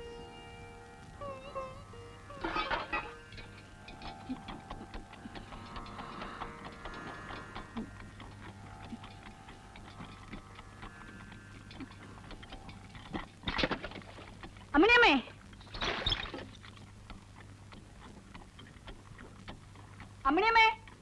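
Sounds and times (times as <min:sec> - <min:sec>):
low steady hum: 0:00.0 - 0:21.0
faint irregular ticking and clicking: 0:03.0 - 0:21.0.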